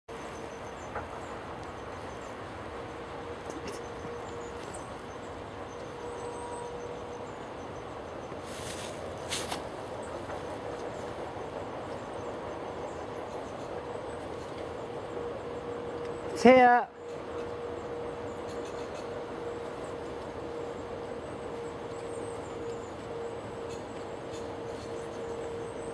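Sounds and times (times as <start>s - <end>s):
outdoor background rumble and hiss: 0.1s - 25.9s.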